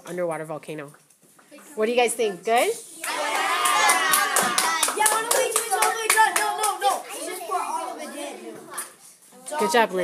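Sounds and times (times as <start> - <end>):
children clapping: 3.0 - 7.0
children calling out: 3.0 - 9.7.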